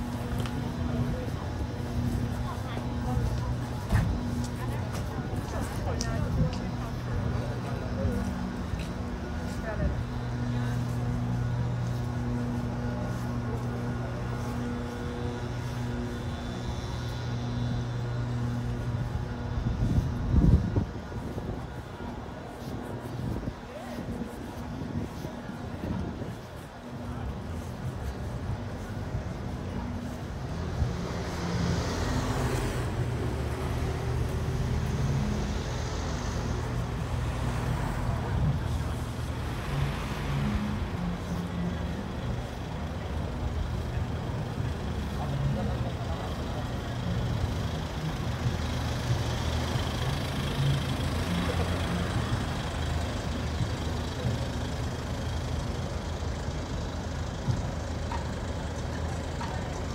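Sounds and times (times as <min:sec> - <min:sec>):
people's voices: 0:00.0 - 0:59.9
road traffic engine rumble: 0:00.0 - 0:59.9.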